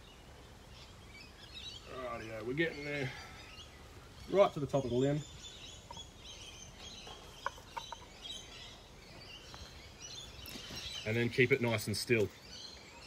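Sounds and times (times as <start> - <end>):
birds chirping: 0.0 - 13.0.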